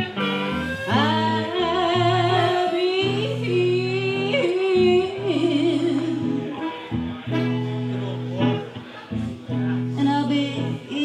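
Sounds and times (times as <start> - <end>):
harmonica: 0.0 - 9.4
electric guitar chords: 0.0 - 11.0
woman singing: 0.8 - 6.8, 9.9 - 11.0.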